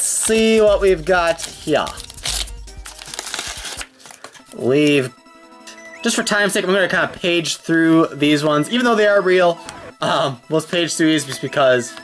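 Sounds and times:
paper wrapping crinkling: 0.0 - 4.6
faint background music: 0.0 - 12.0.

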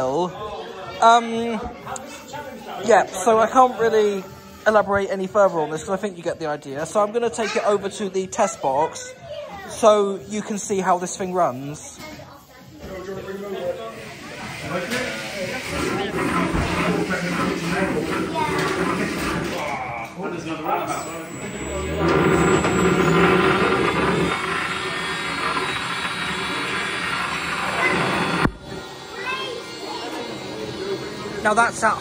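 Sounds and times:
motor whine of spinning bar: 14.3 - 19.8, 20.5 - 32.0
background voices: 20.7 - 28.5.

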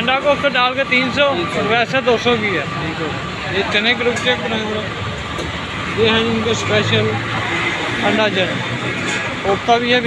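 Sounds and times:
men talking: 0.0 - 10.0
street traffic: 0.0 - 10.0.

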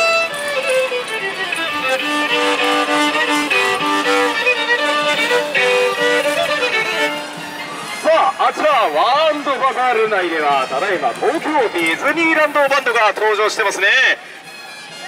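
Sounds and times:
solo violin lively tune: 0.0 - 15.0.

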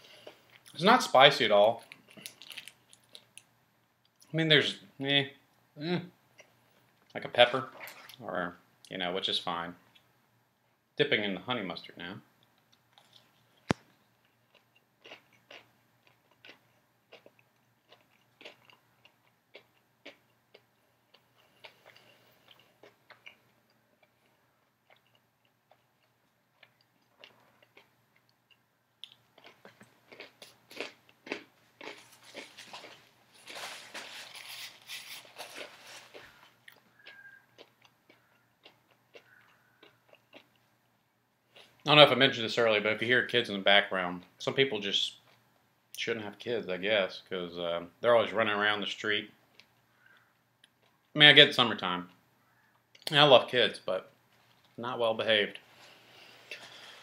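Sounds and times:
chewing crispy food: 1.7 - 3.5, 12.4 - 41.8, 49.5 - 51.2.

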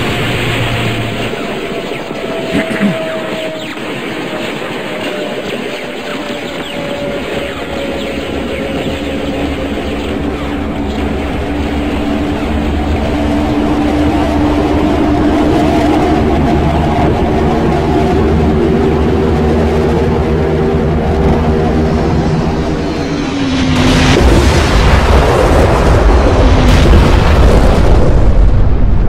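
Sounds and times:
propeller aircraft engines droning: 0.0 - 26.7.

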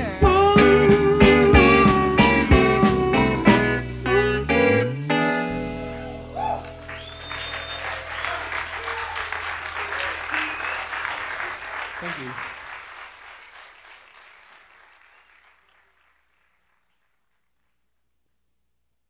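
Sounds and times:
audience applauding and cheering: 5.8 - 17.3.

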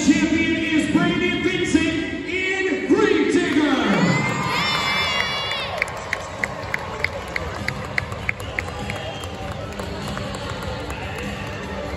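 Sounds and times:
arena crowd noise: 0.0 - 11.9.

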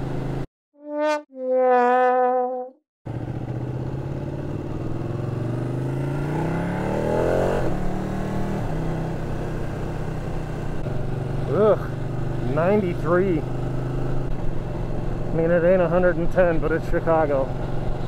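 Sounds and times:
motorcycle engine accelerating: 0.0 - 18.0.

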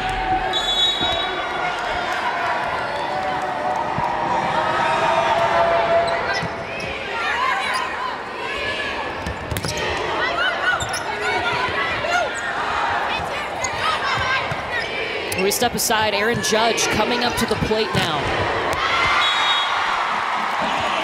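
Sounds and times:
arena crowd noise: 0.0 - 21.0.

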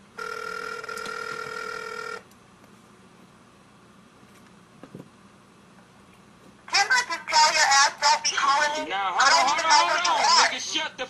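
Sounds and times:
telephone ringback tone: 0.2 - 2.2.

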